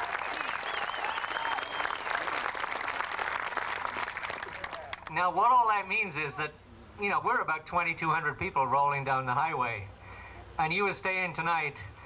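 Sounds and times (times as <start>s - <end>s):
crowd applauding: 0.0s - 5.1s.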